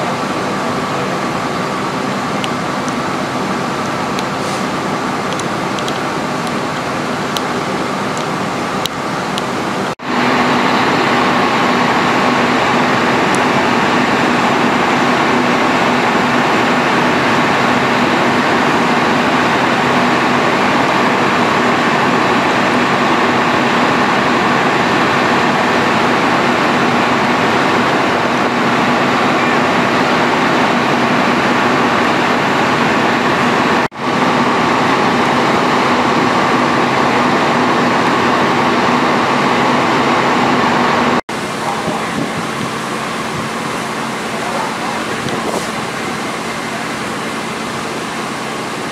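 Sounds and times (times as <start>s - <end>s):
diesel engine running hard: 0.0s - 48.9s.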